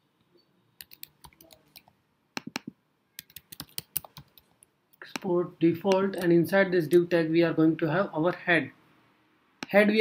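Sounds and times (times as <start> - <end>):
computer keyboard typing: 0.8 - 5.3.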